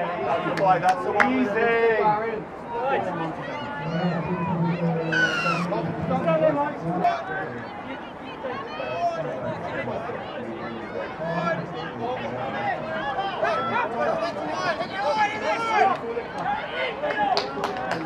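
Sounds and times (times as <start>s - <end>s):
voices calling out and talking: 0.0s - 18.0s.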